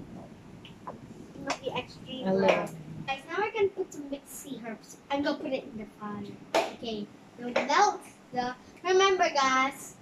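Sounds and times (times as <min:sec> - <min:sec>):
girl speaking: 0:01.4 - 0:10.0.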